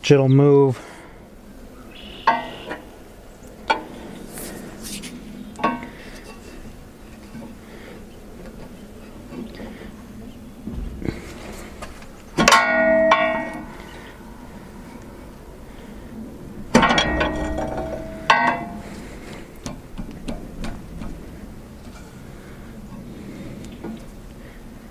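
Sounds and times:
ringing metal clang: 2.2 - 2.8, 12.4 - 14.9, 16.7 - 19.0.

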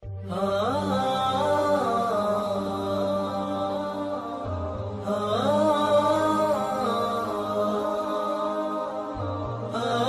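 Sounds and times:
chant-like vocal theme music: 0.0 - 10.0.

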